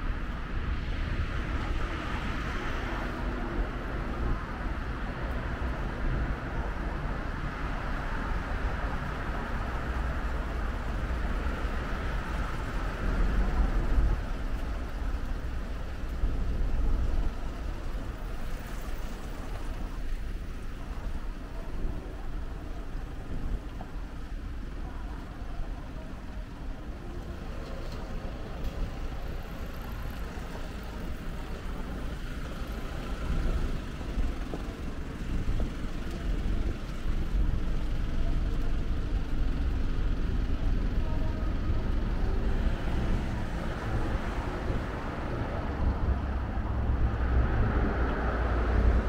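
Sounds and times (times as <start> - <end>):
road traffic rumble: 0.0 - 49.0.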